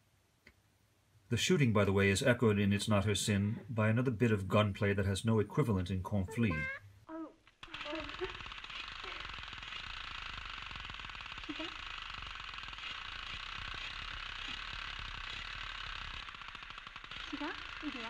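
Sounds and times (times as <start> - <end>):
person speaking: 1.3 - 7.3
automatic gunfire: 7.6 - 18.0.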